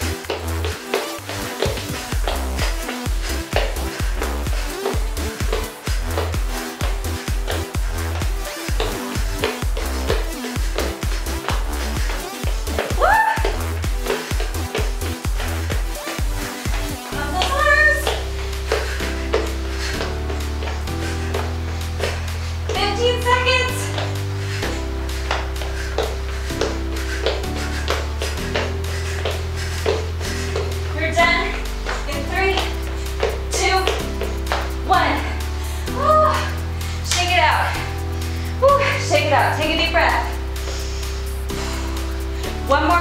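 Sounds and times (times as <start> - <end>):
upbeat dance music: 0.0 - 43.0.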